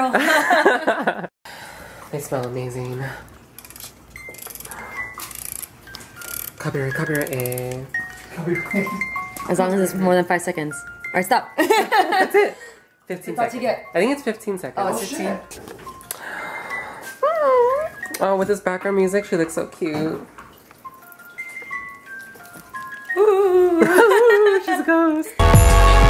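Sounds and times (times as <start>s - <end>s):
music box playing: 3.6s - 11.8s, 12.8s - 19.8s, 20.5s - 24.4s
puppy whining: 17.0s - 18.1s.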